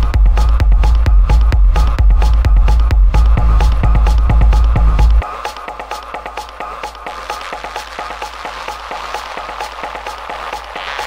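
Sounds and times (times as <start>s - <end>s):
steady low drone: 0.0s - 5.2s
rapid clicking percussion: 0.0s - 11.0s.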